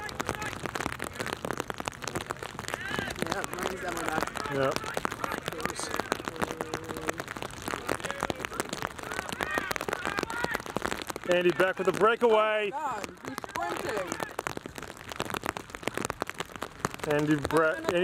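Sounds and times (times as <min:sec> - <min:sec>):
players shouting: 0:00.0 - 0:01.6, 0:02.3 - 0:14.9
rain ticking on plastic: 0:00.0 - 0:18.0.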